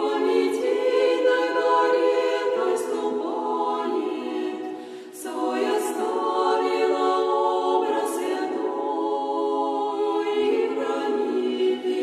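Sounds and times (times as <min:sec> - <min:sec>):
women's choir singing unaccompanied: 0:00.0 - 0:12.0.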